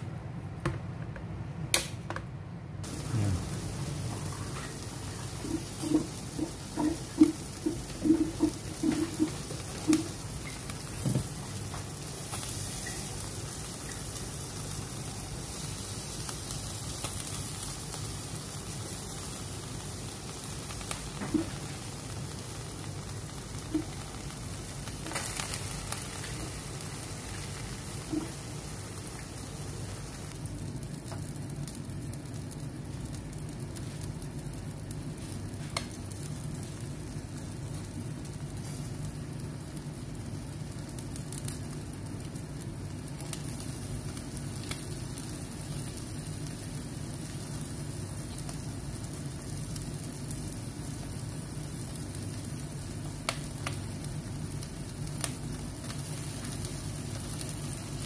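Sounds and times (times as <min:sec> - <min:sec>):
kebabs sizzling on a grill: 0:02.8 - 0:58.0.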